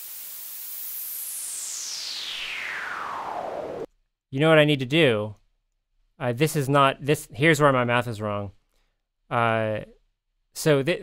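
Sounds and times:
synth filtered noise sweeping down: 0.0 - 3.9.

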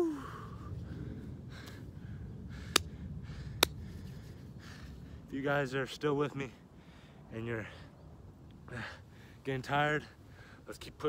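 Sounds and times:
man breathing hard: 0.0 - 5.3, 6.6 - 7.9.

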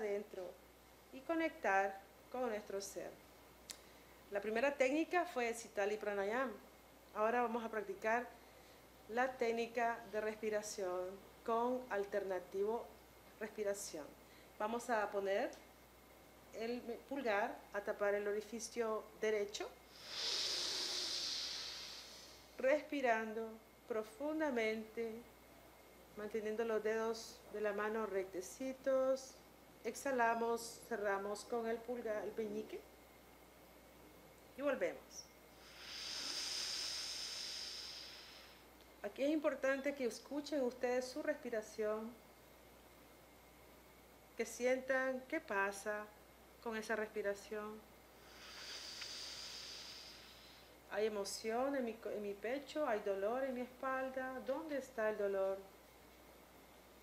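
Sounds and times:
deep inhale through nostril: 19.9 - 22.6, 35.5 - 38.7, 48.2 - 50.8.

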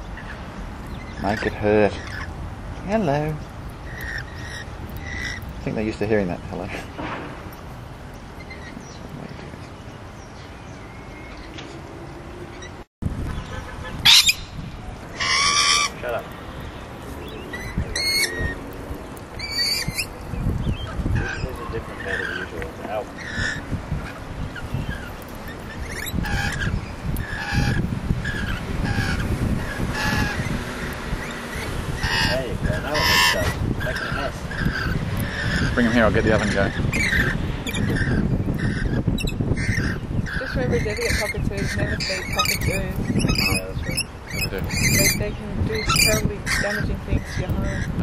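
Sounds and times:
lorikeets screeching: 0.0 - 48.0.

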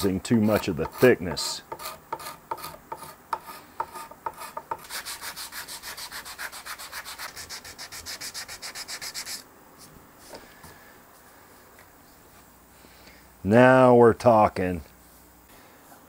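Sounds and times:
sandpaper sanding wood: 0.0 - 9.4.

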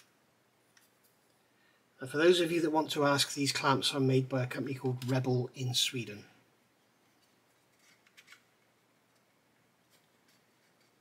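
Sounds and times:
hands handling plastic model: 0.7 - 1.4, 7.0 - 11.0.

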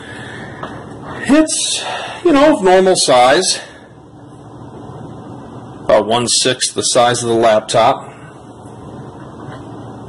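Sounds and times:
low steady background noise: 0.0 - 10.0
man speaking: 1.2 - 3.7.

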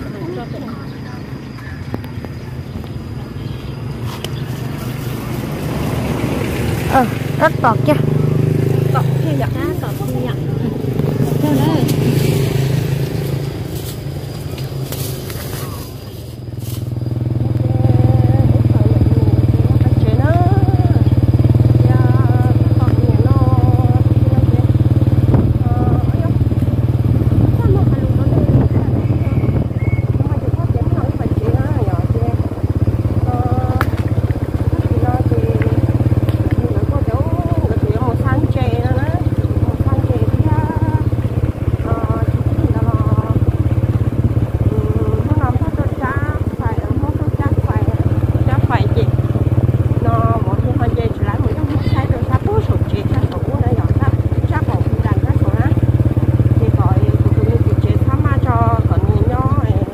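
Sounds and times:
small motorcycle engine running: 0.0 - 59.9.

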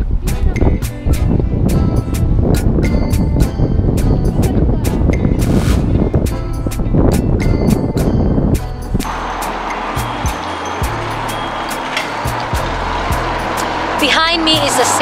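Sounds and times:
steady rushing noise: 0.0 - 15.0.

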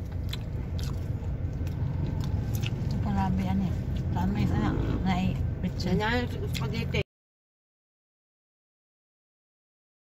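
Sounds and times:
person chewing food: 0.0 - 3.0
car cabin rumble: 0.0 - 7.0.

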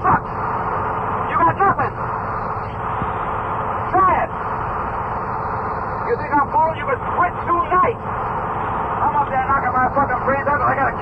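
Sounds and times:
bus engine and road noise: 0.0 - 11.0.

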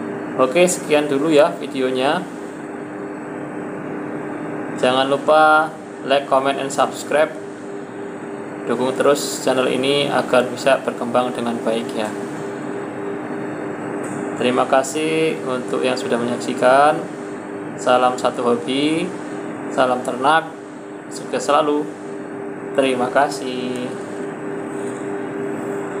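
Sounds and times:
steady mechanical hum: 0.0 - 26.0.

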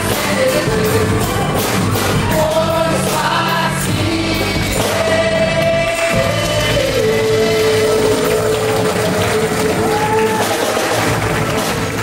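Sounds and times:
people singing: 0.0 - 10.7.

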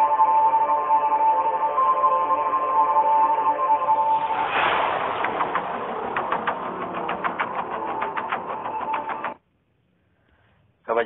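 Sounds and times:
swell of noise: 3.2 - 9.4
rapid even clicking: 5.2 - 9.4.

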